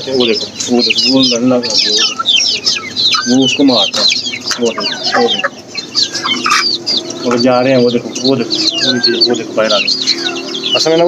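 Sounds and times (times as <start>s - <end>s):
chicks peeping: 0.0s - 11.0s
hens clucking: 0.0s - 11.0s
hen wavering call: 0.9s - 7.3s, 8.4s - 10.8s.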